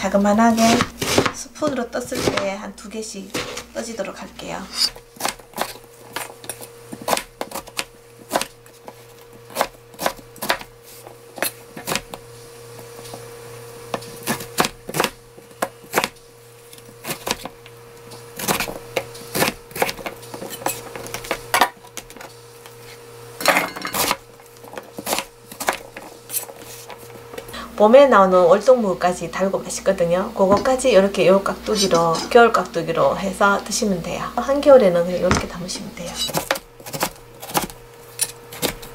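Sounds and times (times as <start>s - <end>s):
faint steady hum: 0.0s - 38.9s
knife chopping on cutting board: 0.6s - 1.4s, 2.1s - 2.5s, 9.5s - 10.7s, 35.3s - 35.7s.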